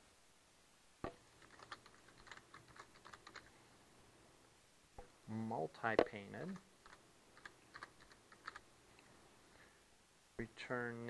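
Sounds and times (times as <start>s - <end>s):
typing on computer keyboard: 1.4s - 3.5s, 6.5s - 8.6s.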